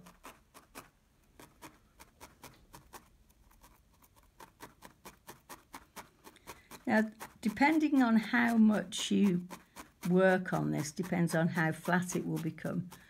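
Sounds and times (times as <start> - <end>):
felting needle punching wool: 0.0 - 13.0.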